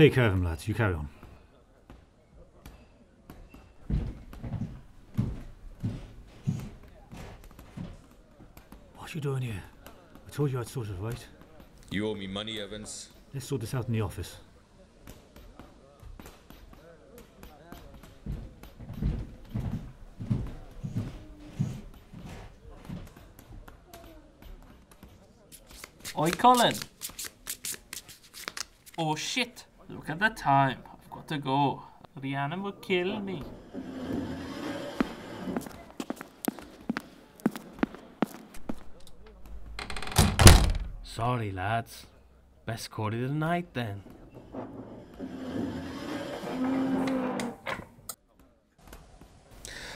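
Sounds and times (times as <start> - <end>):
door slamming shut: 39.7 - 41.0.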